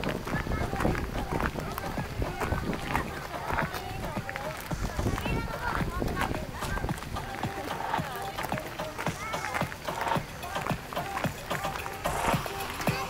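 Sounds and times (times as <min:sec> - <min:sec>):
footsteps of people walking: 0:00.0 - 0:13.0
people chatting: 0:00.0 - 0:13.0.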